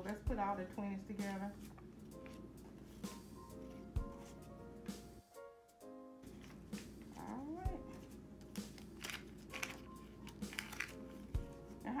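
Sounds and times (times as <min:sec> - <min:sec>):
soft background music: 0:00.0 - 0:12.0
paper banknotes rustling: 0:06.2 - 0:11.9.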